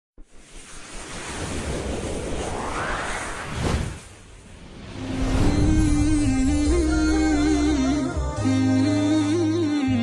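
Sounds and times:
whooshing riser effect: 0.2 - 8.1.

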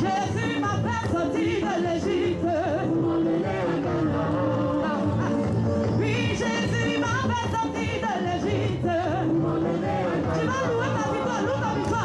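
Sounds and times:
voices singing gospel: 0.0 - 12.0.

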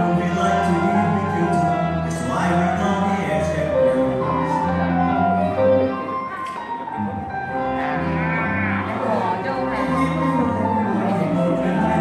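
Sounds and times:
man singing: 0.0 - 5.8, 9.9 - 12.0
live blues band playing: 3.0 - 12.0.

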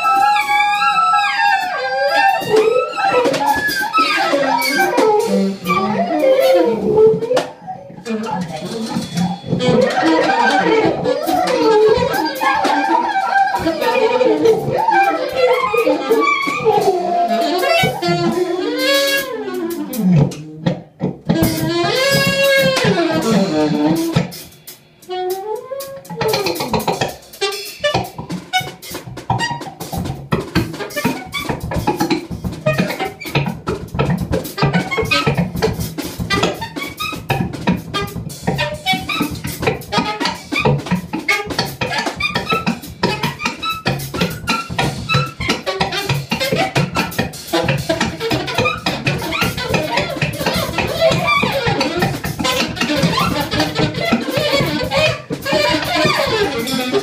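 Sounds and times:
busy dense drumming: 0.0 - 57.0.

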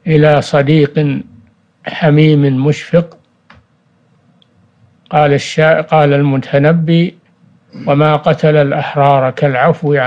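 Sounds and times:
man speaking: 0.0 - 3.2, 5.1 - 10.0
faint steady hum: 0.0 - 10.0.

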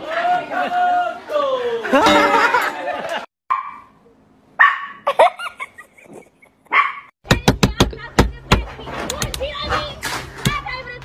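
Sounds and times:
dog barking: 3.5 - 3.9, 4.6 - 5.1, 6.7 - 7.1.

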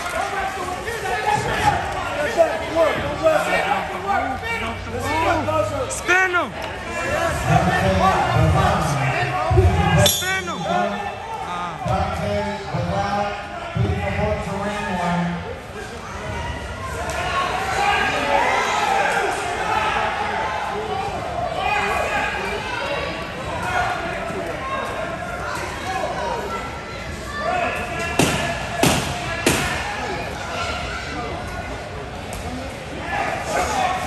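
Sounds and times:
people talking in echoing hall: 0.0 - 34.0.

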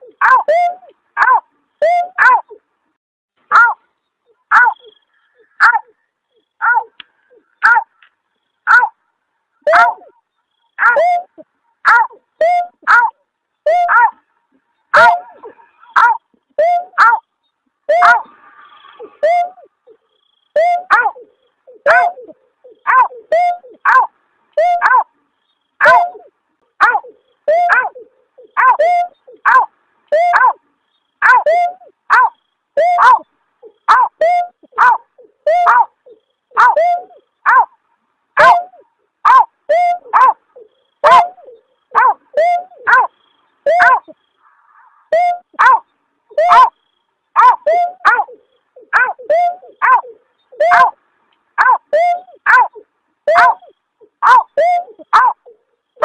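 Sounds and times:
snipe call: 0.0 - 2.5, 9.6 - 13.0, 15.0 - 17.2, 17.9 - 24.0, 24.6 - 25.0, 25.8 - 30.6, 31.2 - 37.6, 38.4 - 51.0, 51.6 - 55.6.

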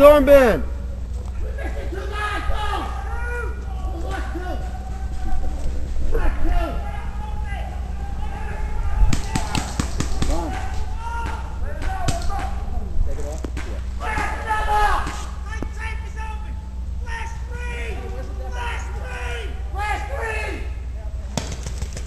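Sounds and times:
players' voices: 0.0 - 21.4
paintball markers firing: 9.2 - 10.5, 21.3 - 22.0.

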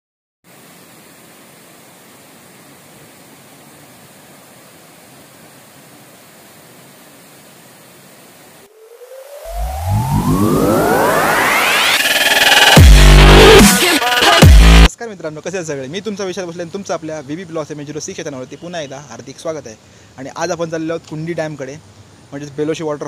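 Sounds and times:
waterfall rushing: 8.3 - 14.5
electronic riser sweeping up: 8.7 - 14.9.

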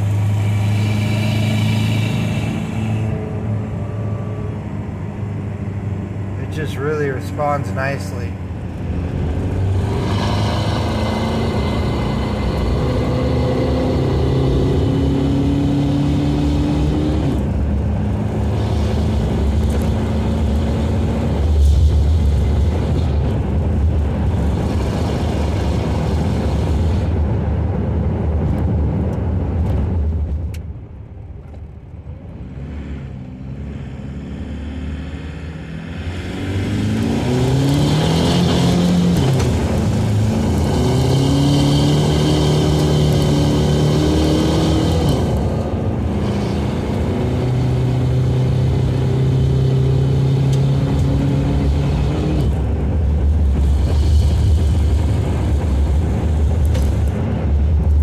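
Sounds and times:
diesel engine accelerating hard: 0.0 - 30.9, 32.0 - 58.0.

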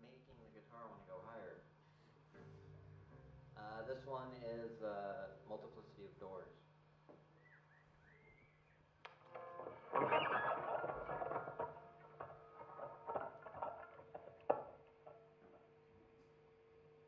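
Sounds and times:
electric guitar through amplifier: 7.4 - 16.3.

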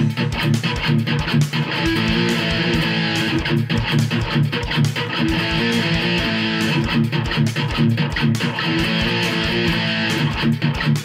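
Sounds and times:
distorted electric guitar strumming: 0.0 - 11.0
drums and bass: 0.0 - 11.0.

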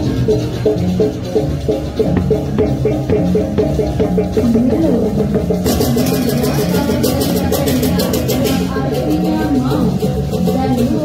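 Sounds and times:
gamelan music: 0.0 - 11.0.

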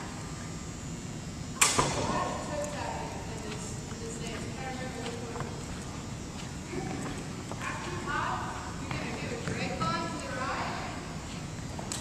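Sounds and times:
low hubbub of a large room: 0.0 - 12.0.

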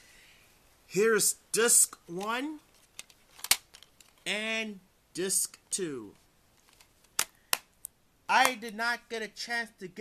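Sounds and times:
plastic case snapping shut: 3.4 - 3.8.

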